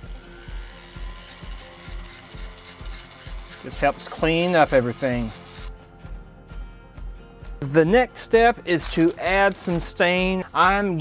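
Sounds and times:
rotary tool whirring: 0:00.0 - 0:05.8
background music with beat: 0:00.0 - 0:11.0.

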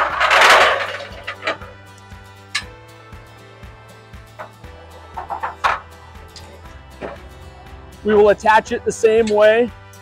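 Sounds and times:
metal ramp scraping on rail: 0:00.0 - 0:01.8
background music: 0:00.0 - 0:10.0.

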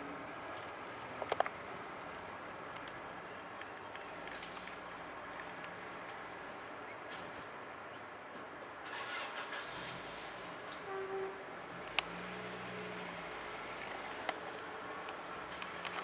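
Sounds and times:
distant road traffic: 0:00.0 - 0:16.0
vehicle hum: 0:00.0 - 0:16.0
sharp clicks: 0:11.8 - 0:12.2, 0:13.8 - 0:16.0.

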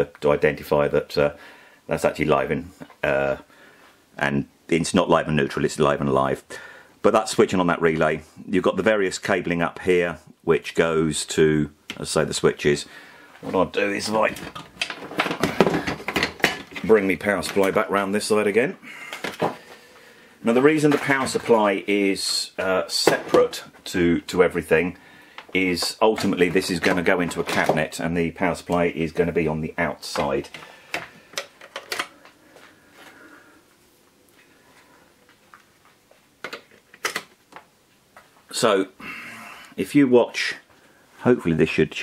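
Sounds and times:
faint room noise: 0:00.0 - 0:42.0
hard objects clattering: 0:13.4 - 0:17.8, 0:18.9 - 0:19.9
light handling clicks and knocks: 0:30.1 - 0:32.4.

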